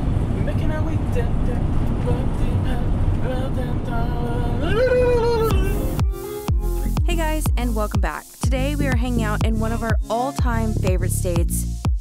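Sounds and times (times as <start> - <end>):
road and engine rumble in vehicle: 0.0 - 6.0.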